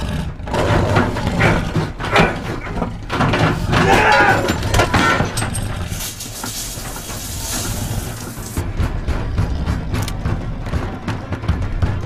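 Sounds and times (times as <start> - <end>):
tense music score: 0.0 - 12.0
scattered knocks: 0.6 - 12.0
hissing wash: 5.8 - 8.6.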